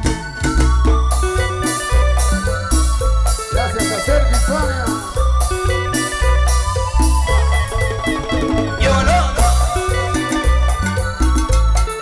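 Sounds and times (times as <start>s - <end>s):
bass line: 0.0s - 12.0s
melody lines: 0.0s - 12.0s
timbales and guiro percussion: 0.0s - 12.0s.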